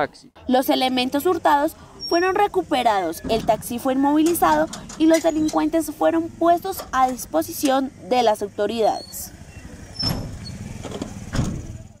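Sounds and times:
vehicle engine rumble: 0.7 - 12.0.

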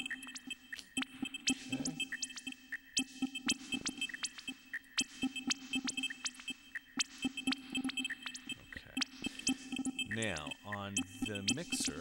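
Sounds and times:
glitchy electronic drum pattern: 0.0 - 12.0
high beeps: 0.0 - 12.0.

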